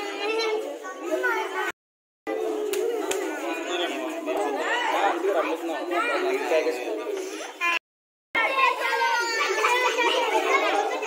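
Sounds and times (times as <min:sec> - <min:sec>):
overlapping voices chattering: 0:00.0 - 0:07.8, 0:08.4 - 0:11.0.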